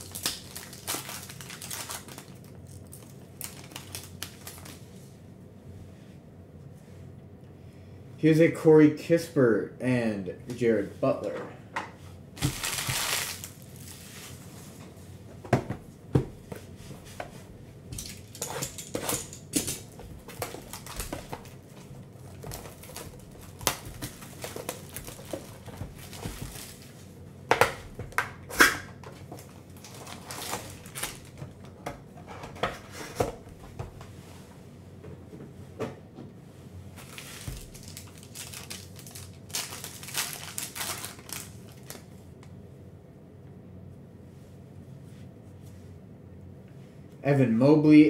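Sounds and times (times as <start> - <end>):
rustling wrapper and cardboard: 0.0 - 4.9, 12.4 - 14.5, 18.1 - 27.2, 29.0 - 33.4, 37.0 - 42.1
foil packs sliding: 12.4 - 14.2, 20.3 - 21.5, 22.2 - 27.0, 29.8 - 31.4, 37.0 - 42.0.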